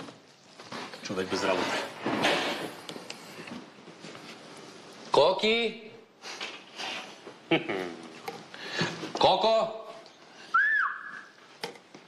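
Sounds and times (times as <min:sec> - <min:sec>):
person whistling a short call: 0:10.5 - 0:11.3.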